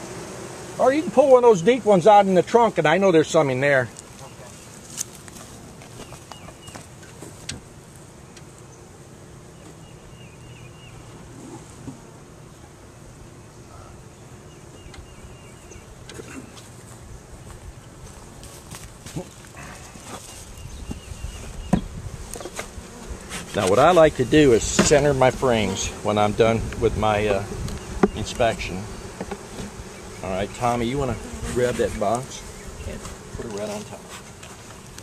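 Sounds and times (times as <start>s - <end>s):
honeybees buzzing: 0.0s - 35.0s.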